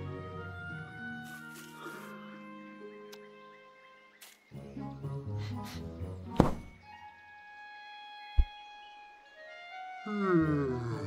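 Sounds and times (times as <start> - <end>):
soft orchestral music: 0.0 - 11.0
sudden thuds: 6.3 - 6.8.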